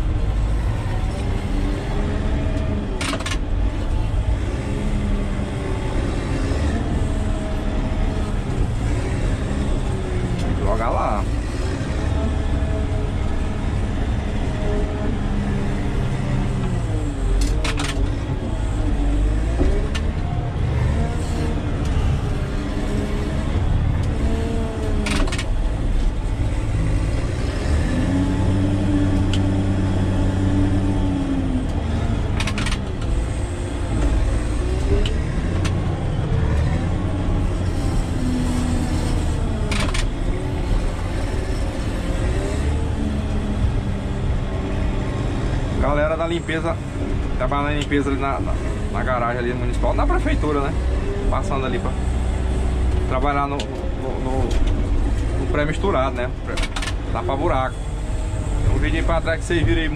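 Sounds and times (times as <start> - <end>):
diesel engine running under load: 0.0 - 59.9.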